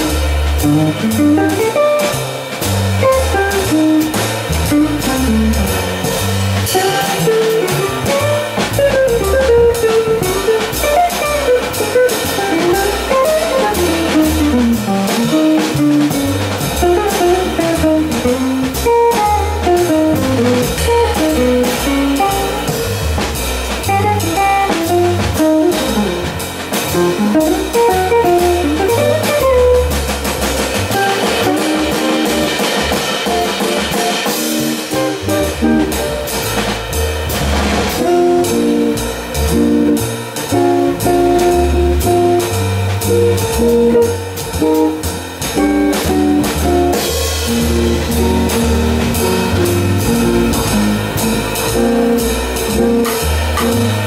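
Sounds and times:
drum kit with cymbals: 0.0 - 54.0
jazz guitar solo: 0.0 - 54.0
stepping bass notes: 0.0 - 54.0.

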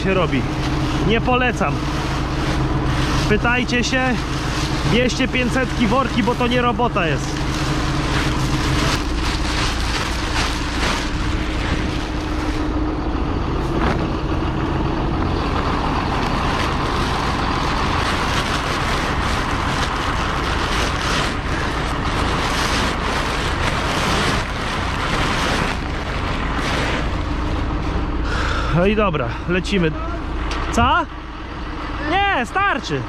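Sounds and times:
granular fertilizer pouring: 0.0 - 28.2
tractor engine idling: 0.0 - 33.0
plastic liner crackling: 0.2 - 12.7, 15.5 - 27.2.

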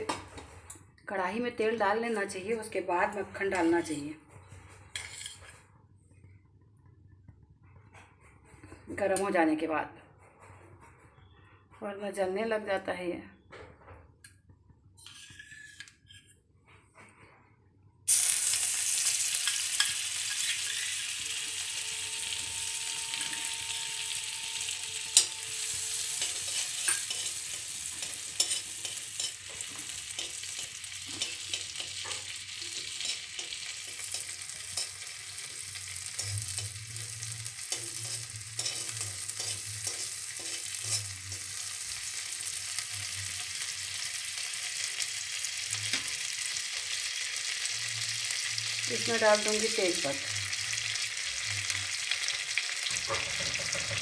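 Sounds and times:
spoon scraping metal pan: 4.8 - 5.6, 15.0 - 16.3, 18.1 - 45.0, 50.4 - 54.0
butter sizzling in hot oil: 18.1 - 54.0.

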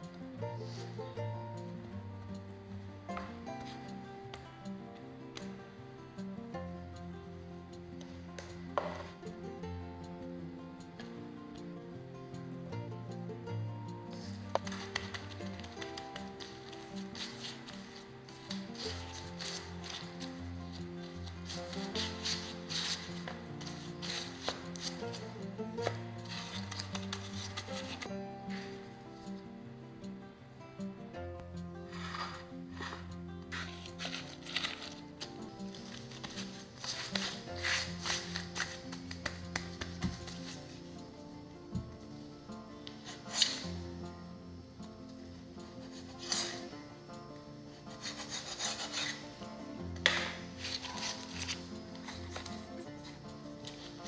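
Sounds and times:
background music with held notes: 0.0 - 54.0
hands kneading dough: 14.1 - 28.8, 31.9 - 41.0, 42.8 - 43.8, 47.9 - 54.0
knife scraping on work surface: 14.2 - 20.4, 21.4 - 25.2, 31.9 - 33.0, 35.9 - 40.4, 43.1 - 43.6, 45.9 - 46.7, 47.9 - 49.3, 50.0 - 52.7.

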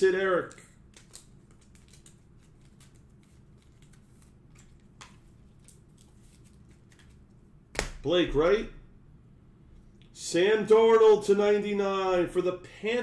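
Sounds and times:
handling trading cards: 0.4 - 8.0.

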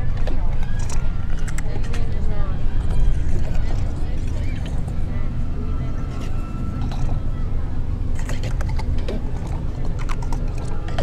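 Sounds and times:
deep steady rumble: 0.0 - 11.0.

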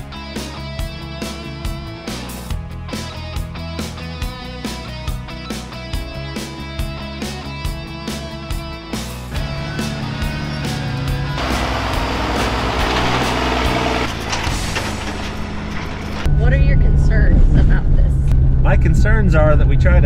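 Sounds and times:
background music: 0.0 - 18.6
vehicle engine and road drone: 9.0 - 20.0.

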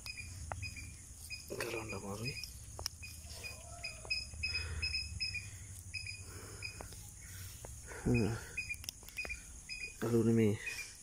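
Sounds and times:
cricket chirping: 0.0 - 11.0.

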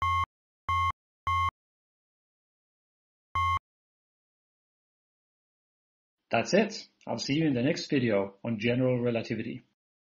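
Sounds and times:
short electronic beeps: 0.0 - 1.5, 3.4 - 3.6.

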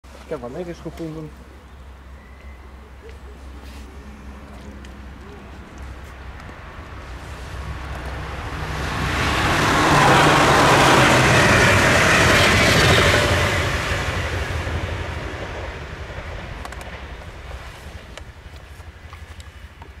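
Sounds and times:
train passing at speed: 3.8 - 19.1.

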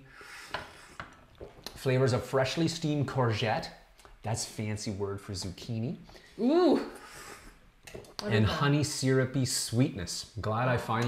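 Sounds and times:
person speaking: 1.6 - 7.0, 7.9 - 11.0.

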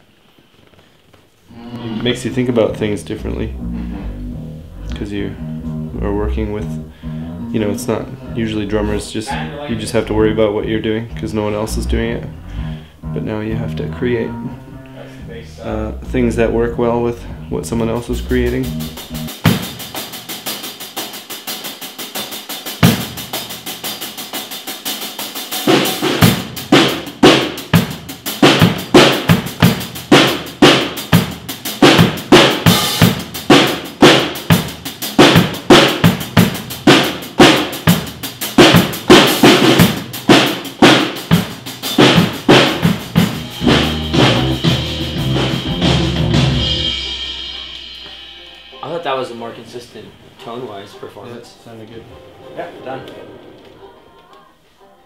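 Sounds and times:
drum kit playing: 1.5 - 54.8.

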